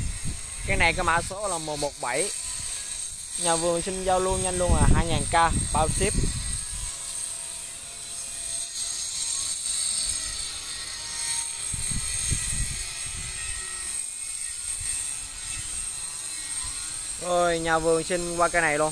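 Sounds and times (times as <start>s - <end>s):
high-pitched hiss: 0.0s - 18.9s.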